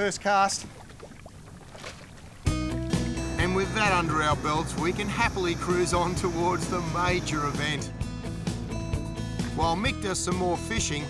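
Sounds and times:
music with chords and low bass: 0:02.5 - 0:11.0.

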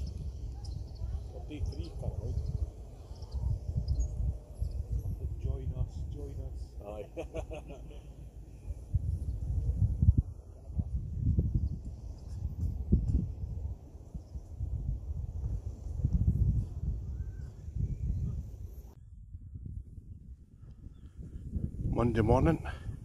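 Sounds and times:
wind buffeting microphone: 0:00.0 - 0:23.0.

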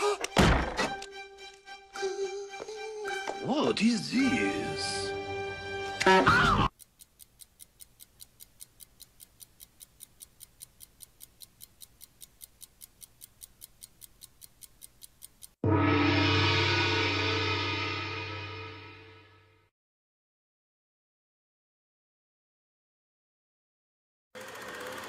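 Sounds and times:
countdown ticking: 0:05.1 - 0:19.2
gong struck: 0:15.6 - 0:19.5.

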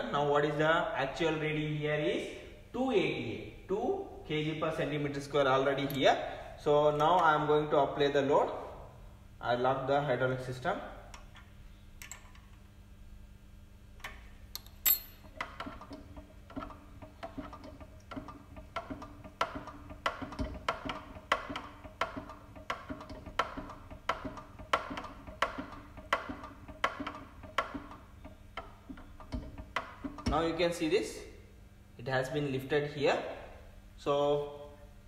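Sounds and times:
hand pump clicking: 0:14.6 - 0:30.4.

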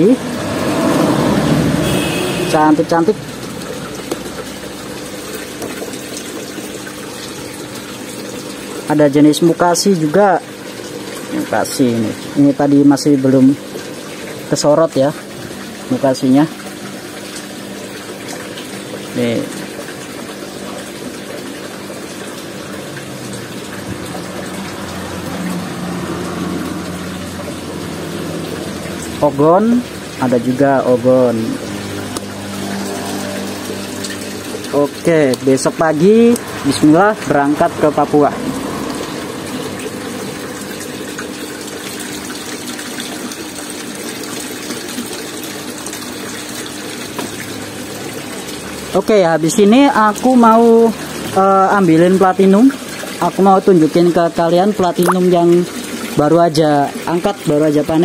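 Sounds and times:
electric pump humming: 0:00.0 - 0:58.0
water running into a tub: 0:00.0 - 0:58.0.

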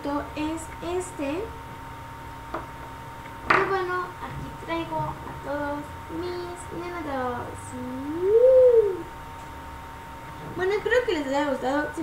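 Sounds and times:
girl humming gliding note: 0:07.7 - 0:09.1.

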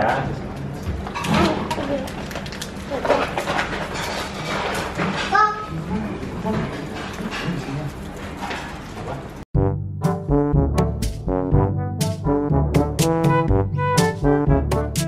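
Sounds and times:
brass music sting: 0:09.6 - 0:15.0.

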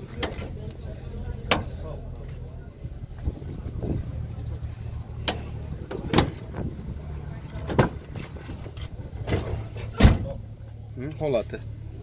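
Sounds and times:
low vehicle hum inside cab: 0:00.0 - 0:12.0.

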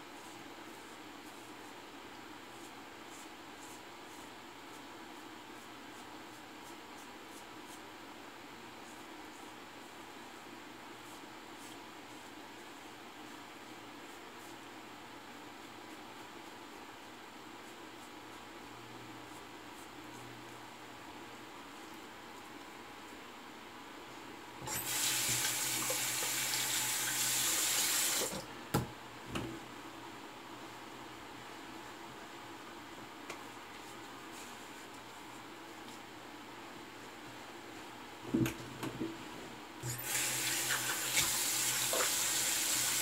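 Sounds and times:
sink tap running: 0:24.6 - 0:28.4, 0:39.9 - 0:43.0.

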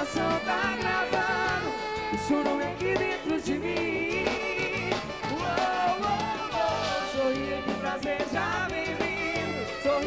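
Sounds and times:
band playing live: 0:00.0 - 0:10.0.

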